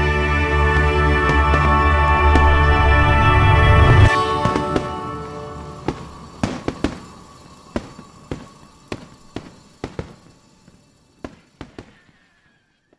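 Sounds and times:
fireworks bangs: 0:00.0 - 0:12.7.

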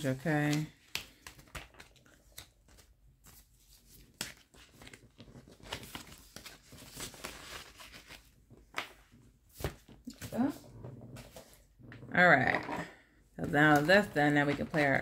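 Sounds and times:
paper and plastic rustling: 0:00.0 - 0:10.6, 0:13.5 - 0:15.0.

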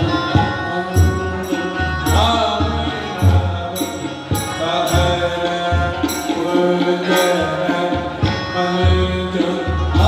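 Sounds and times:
chant-like devotional singing: 0:00.0 - 0:10.0.

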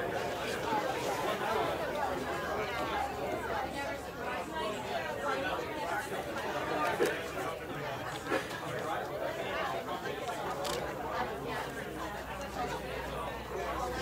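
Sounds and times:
audience chatter: 0:00.0 - 0:14.0.

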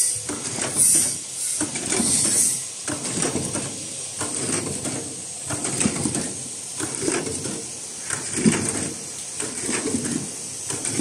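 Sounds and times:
steady high hiss: 0:00.0 - 0:04.4, 0:05.0 - 0:11.0
mechanical clatter and clicks: 0:00.2 - 0:11.0.

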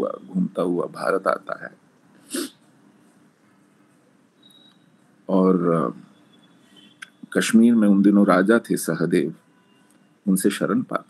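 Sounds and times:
man sneezing: 0:02.3 - 0:02.6.

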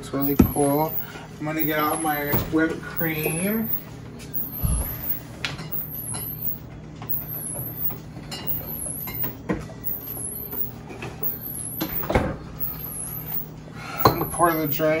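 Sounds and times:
refrigerator low hum: 0:00.0 - 0:15.0.

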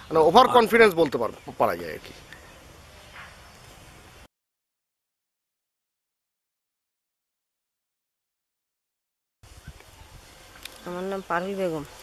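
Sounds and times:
woman speaking: 0:10.8 - 0:12.0.

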